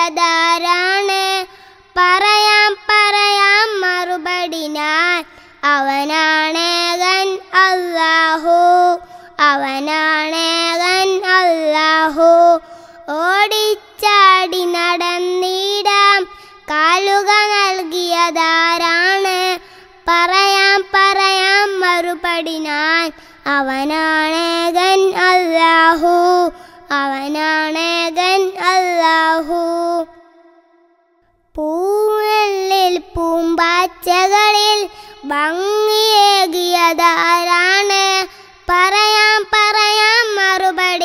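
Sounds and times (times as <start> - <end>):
child singing with vibrato: 0.0 - 41.0.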